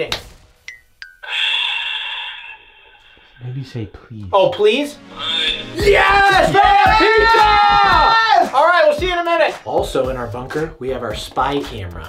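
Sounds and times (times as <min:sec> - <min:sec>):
person sighing: 0:01.2 - 0:03.4, 0:05.1 - 0:05.8.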